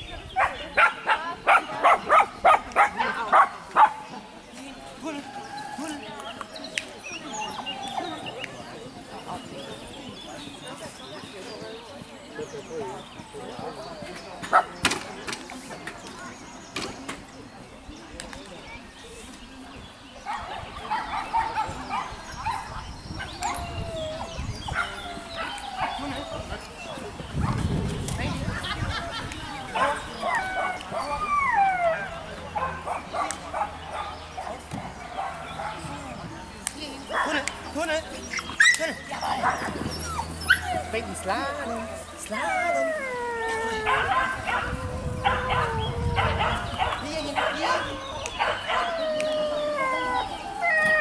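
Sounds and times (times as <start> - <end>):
background voices: 41.0 - 51.0
small dog barking and yipping: 42.4 - 49.4.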